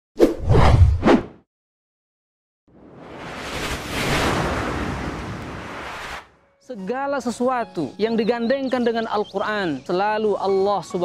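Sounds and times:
whoosh effects: 2.7s - 6.4s
low boom: 2.8s - 6.0s.

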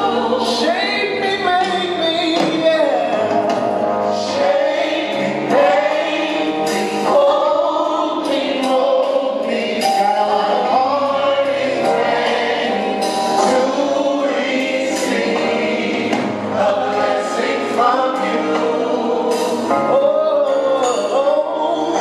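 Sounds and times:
gospel choir singing: 0.0s - 1.7s, 2.4s - 22.0s
lead singers on microphones: 0.0s - 22.0s.

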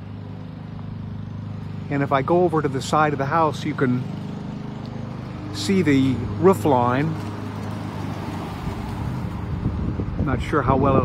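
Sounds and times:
street noise: 0.0s - 11.0s
vehicle engine humming: 0.0s - 11.0s.

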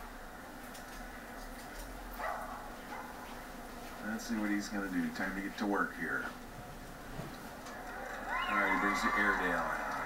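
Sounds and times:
dog bark: 2.2s - 3.3s
arena background through tv speaker: 3.8s - 10.0s.

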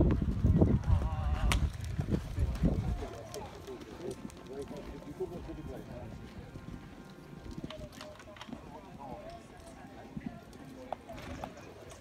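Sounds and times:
hooves cantering on sand: 0.0s - 12.0s
faint voices talking: 0.3s - 12.0s.

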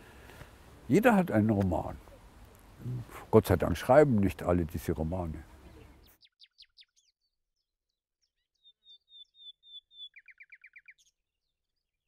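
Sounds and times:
songbird chirping: 0.3s - 12.0s.

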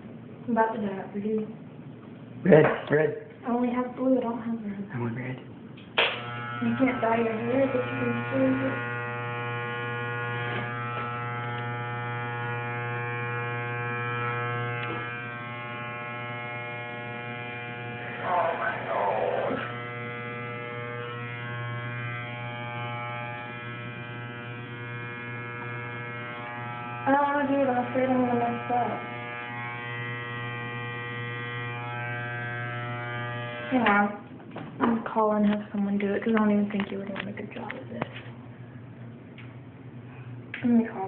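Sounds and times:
electric hair clippers buzzing: 5.8s - 34.2s.

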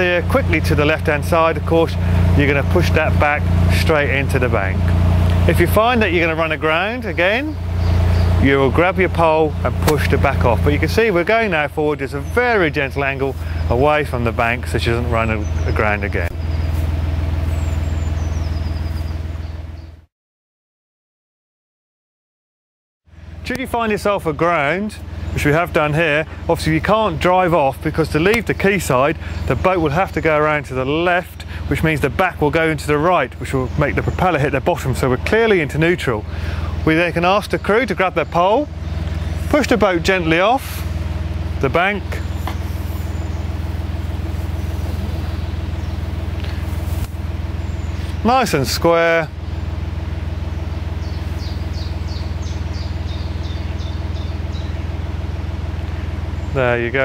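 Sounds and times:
boat diesel engine droning: 0.0s - 20.1s, 23.1s - 57.0s.

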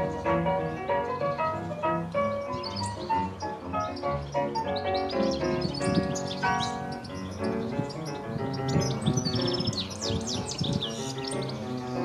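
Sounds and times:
background music: 0.0s - 12.0s
goldfinch twittering song: 0.0s - 12.0s.

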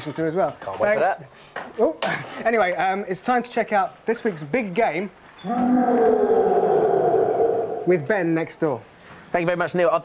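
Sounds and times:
men shouting together: 5.5s - 8.0s.

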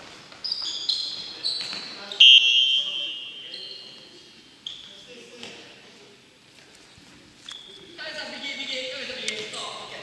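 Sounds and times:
sneakers squeaking on wooden floor: 0.0s - 2.3s.

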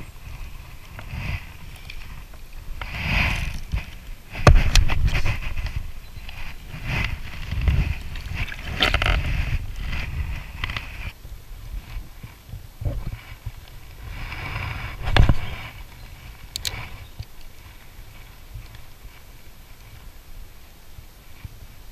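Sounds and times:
wind rumbling on microphone: 0.0s - 21.9s.

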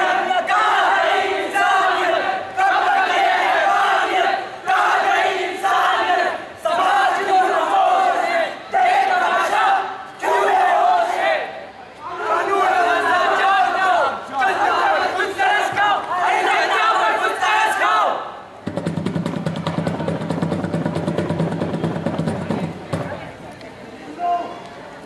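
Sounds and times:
young men chanting in unison: 0.0s - 18.4s.

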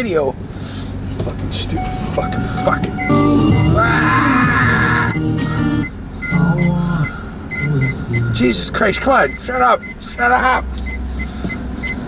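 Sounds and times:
short high beeps: 1.7s - 3.8s, 5.1s - 10.3s
low held electronic tones: 1.7s - 10.3s.

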